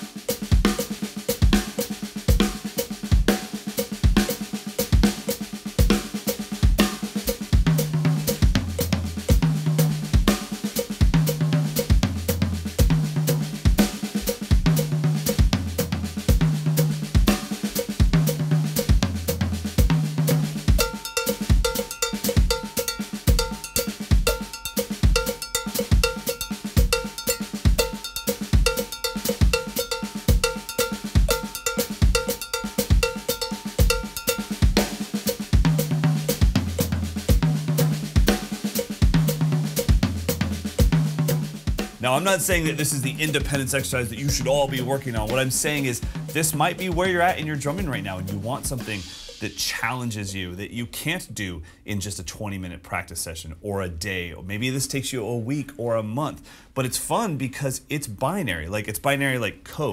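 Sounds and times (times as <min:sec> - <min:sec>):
drum kit playing: 0:00.0 - 0:51.3
ringing metal bell pattern: 0:20.8 - 0:34.6.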